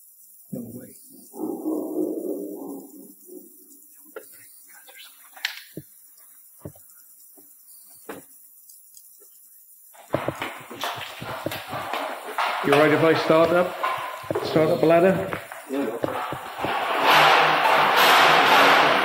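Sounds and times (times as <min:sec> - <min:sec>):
faint knocks and clicks: 0:06.6 - 0:08.4, 0:10.0 - 0:18.8
loud scuffing and rustling: 0:10.0 - 0:19.0.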